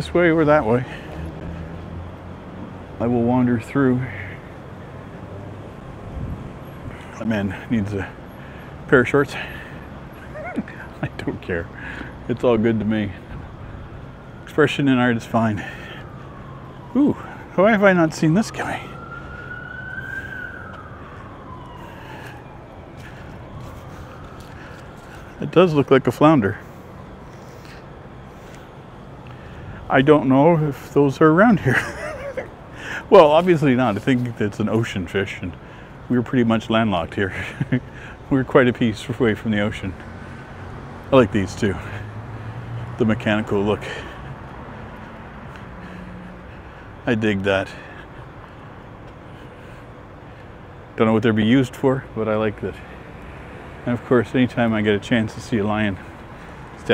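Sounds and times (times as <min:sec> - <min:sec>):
distant traffic hum: 0:00.0 - 0:56.9
siren wailing: 0:13.1 - 0:34.0.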